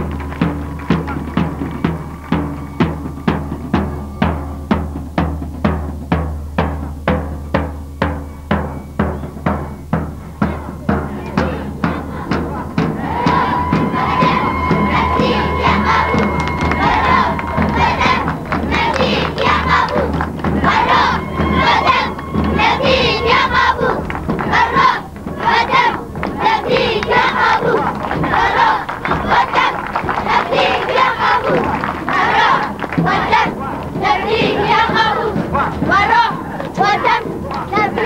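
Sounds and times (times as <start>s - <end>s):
drum beating march rhythm: 0.0s - 38.0s
children shouting in chorus: 11.5s - 38.0s
long held note: 13.5s - 18.6s, 20.6s - 24.1s.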